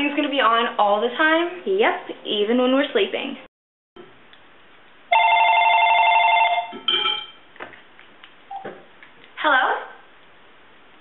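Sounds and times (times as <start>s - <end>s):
telephone ringing: 5.1s - 7.4s.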